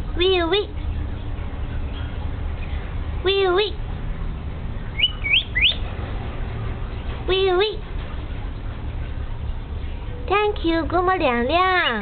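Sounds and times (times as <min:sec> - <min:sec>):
myna whistled chirps: 0:04.9 - 0:05.8.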